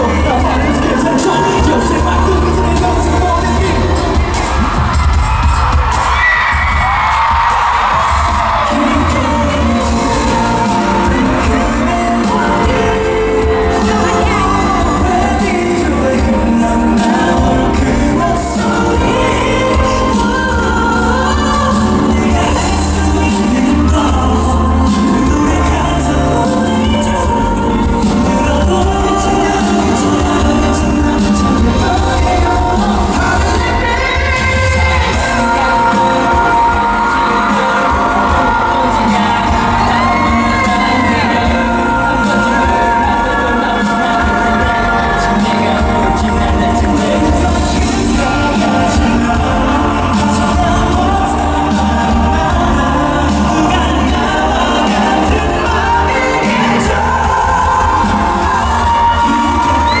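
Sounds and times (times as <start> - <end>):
male vocal group singing: 0.0 - 60.0
pop backing track with bass beat: 0.0 - 60.0.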